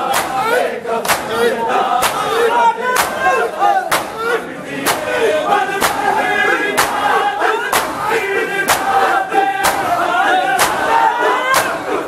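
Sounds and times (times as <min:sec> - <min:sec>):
men chanting and shouting: 0:00.0 - 0:12.0
palms slapping bare chests: 0:00.1 - 0:01.4, 0:02.0 - 0:11.9.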